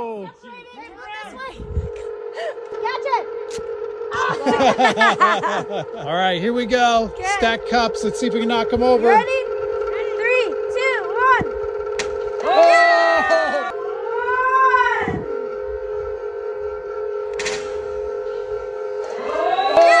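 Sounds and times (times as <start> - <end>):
hub motors whining: 0.0 - 20.0.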